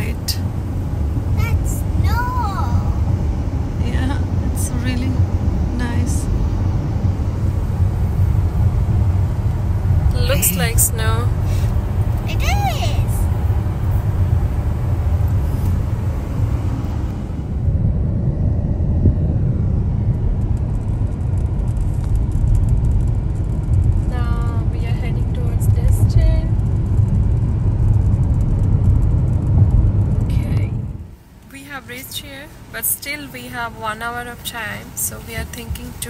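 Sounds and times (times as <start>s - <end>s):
car tyres and engine rumble: 0.0s - 36.0s.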